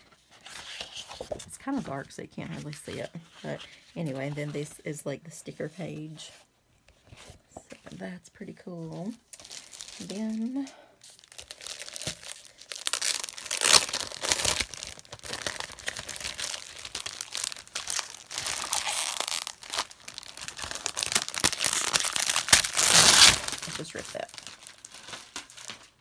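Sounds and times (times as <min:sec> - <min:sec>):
plastic wrapping crinkling: 0:08.8 - 0:26.0.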